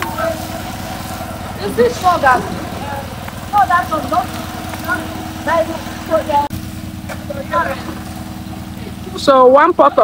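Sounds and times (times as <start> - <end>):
people talking: 0.0 - 0.9, 1.5 - 6.5, 7.1 - 8.1, 8.8 - 10.0
engine humming: 0.0 - 10.0.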